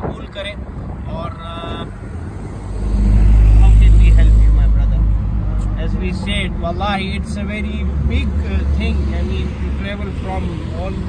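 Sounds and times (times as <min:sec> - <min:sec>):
vehicle engine passing by: 0:01.2 - 0:11.0.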